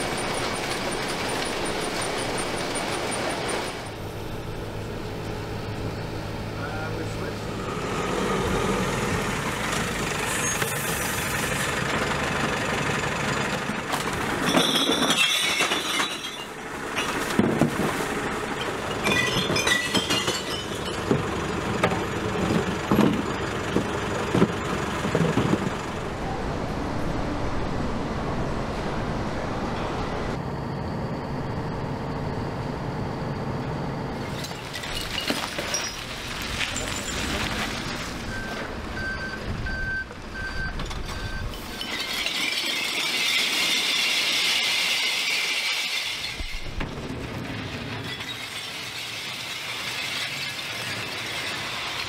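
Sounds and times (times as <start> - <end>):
lorry engine idling: 11.1 - 14.4, 20.2 - 34.3
glass bottles pouring onto concrete: 14.3 - 17.3, 18.5 - 21.4, 34.3 - 38.0, 41.5 - 46.7, 48.0 - 51.6
glass and cans clinking: 14.4 - 17.2, 18.6 - 21.2
truck reversing alarm beeps: 38.2 - 43.0.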